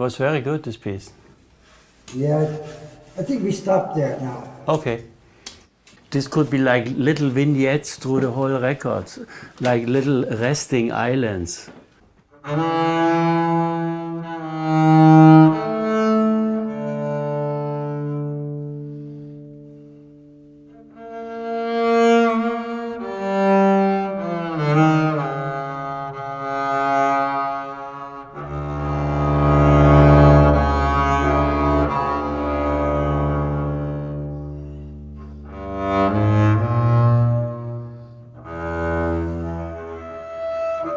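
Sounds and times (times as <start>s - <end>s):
bowed double bass: 12.4s - 40.9s.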